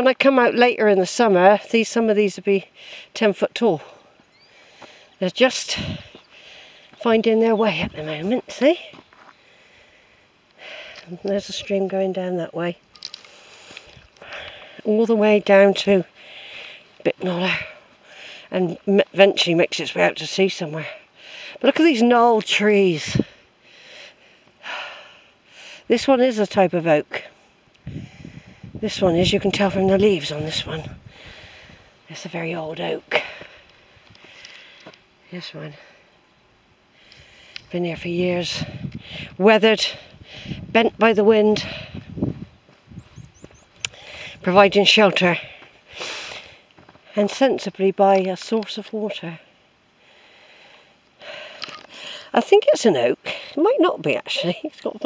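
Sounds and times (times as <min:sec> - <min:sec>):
woman breathing: 0:02.7 - 0:03.2, 0:03.8 - 0:07.0, 0:09.2 - 0:11.1, 0:13.2 - 0:14.9, 0:16.1 - 0:18.5, 0:21.0 - 0:21.6, 0:23.1 - 0:25.9, 0:27.3 - 0:28.8, 0:30.9 - 0:32.1, 0:33.1 - 0:35.0, 0:36.9 - 0:37.7, 0:38.6 - 0:40.7, 0:43.9 - 0:44.5, 0:49.9 - 0:52.4
faint hiss: 0:08.2 - 0:19.0, 0:45.4 - 0:47.3
breathy rush of air: 0:27.4 - 0:28.8, 0:30.9 - 0:32.1.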